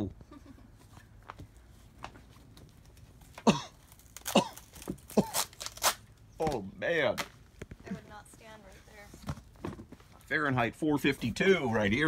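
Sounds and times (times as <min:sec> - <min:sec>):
person coughing harshly: 0:03.4 - 0:05.5.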